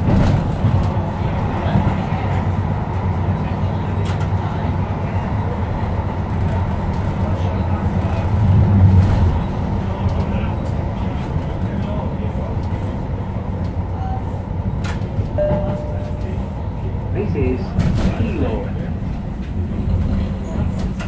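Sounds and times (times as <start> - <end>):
train rumble on track: 0.0 - 21.0.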